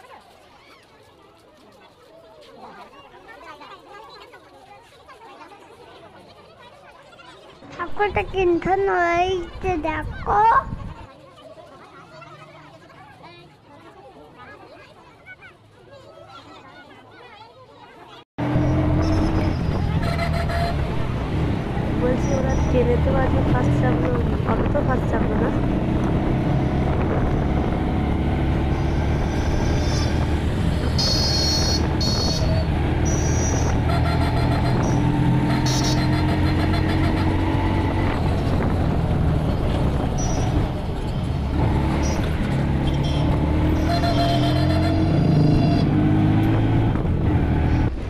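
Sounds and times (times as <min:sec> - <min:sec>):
street traffic noise: 0:00.0 - 0:48.0
auto-rickshaw engine running: 0:18.4 - 0:48.0.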